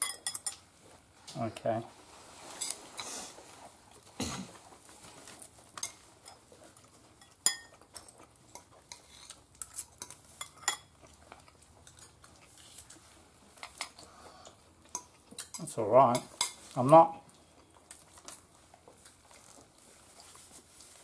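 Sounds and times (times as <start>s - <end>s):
tableware clicks and clinks: 0.0s - 0.6s, 7.2s - 7.8s, 10.0s - 10.9s.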